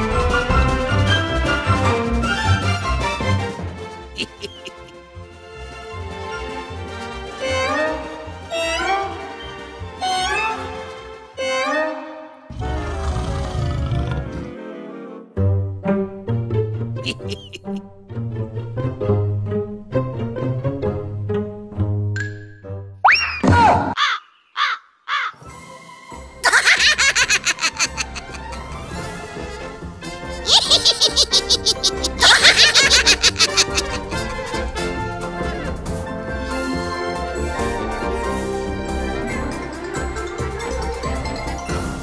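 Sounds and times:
soft cartoon music: 0.0s - 23.8s, 25.3s - 42.0s
cartoon character squeaks: 17.1s - 17.8s, 30.4s - 34.1s.

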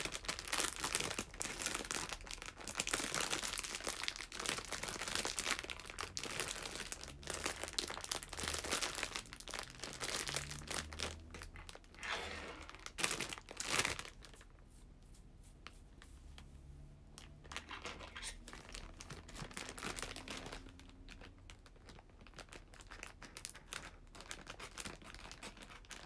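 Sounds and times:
plastic wrapper crackling: 0.0s - 14.6s, 17.2s - 26.0s.

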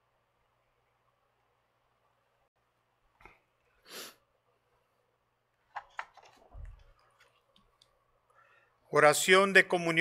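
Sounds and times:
man speaking: 8.9s - 10.0s.

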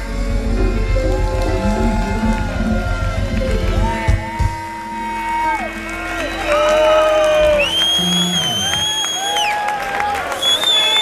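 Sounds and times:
live rock band: 0.0s - 9.3s
crowd cheering: 0.0s - 11.0s
long high whistle: 7.4s - 11.0s.

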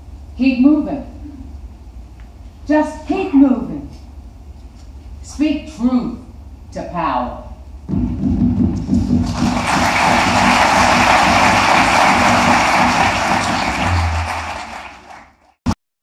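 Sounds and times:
audience applauding: 9.0s - 15.7s.

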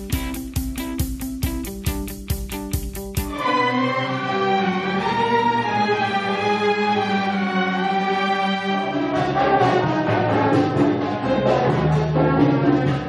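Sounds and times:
orchestra playing strings and brass: 3.3s - 13.0s.

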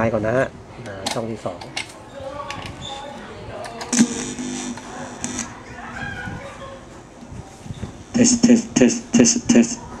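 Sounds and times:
loud held tone: 3.9s - 5.6s.

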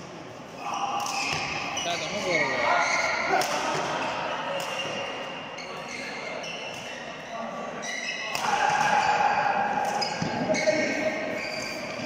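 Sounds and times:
racket hitting shuttlecock: 3.3s - 5.0s, 8.3s - 10.5s
shoes squeaking on court: 4.7s - 7.2s, 10.0s - 12.0s.

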